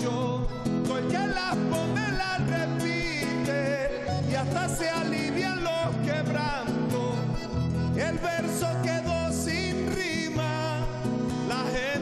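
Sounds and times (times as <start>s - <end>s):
button accordion: 0.0s - 12.0s
classical guitar: 0.0s - 12.0s
man singing: 0.0s - 12.0s.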